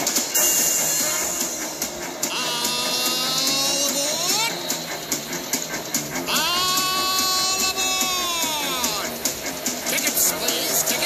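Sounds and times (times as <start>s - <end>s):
music: 0.0s - 11.0s
steam hissing: 0.0s - 11.0s
steam train whistle: 0.3s - 8.9s.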